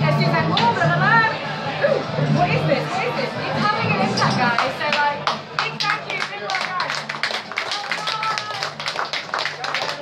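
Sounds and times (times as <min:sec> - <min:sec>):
people clapping: 0:04.5 - 0:10.0.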